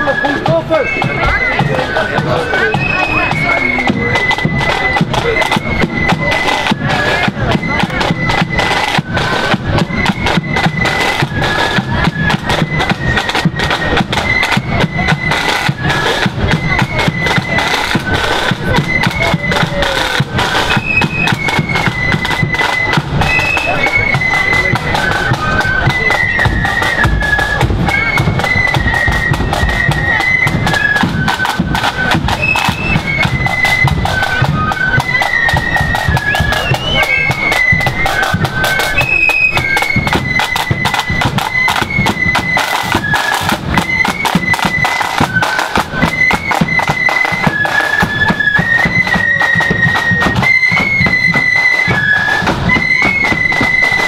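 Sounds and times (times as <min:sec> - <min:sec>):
bass drum march beat: 0:00.0 - 0:54.0
flute melody: 0:00.0 - 0:54.0
side drums: 0:00.0 - 0:54.0.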